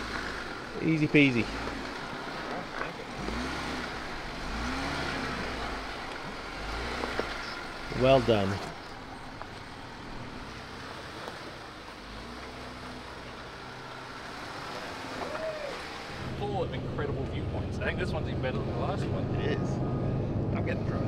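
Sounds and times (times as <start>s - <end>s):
engines idling: 0.0s - 21.0s
people talking: 0.8s - 1.6s, 2.4s - 3.2s, 7.3s - 8.8s, 15.2s - 19.8s, 20.6s - 21.0s.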